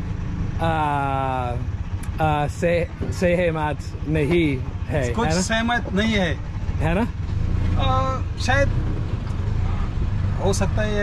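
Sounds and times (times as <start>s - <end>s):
motor vehicle rumble: 0.0s - 11.0s
man speaking: 2.2s - 7.1s.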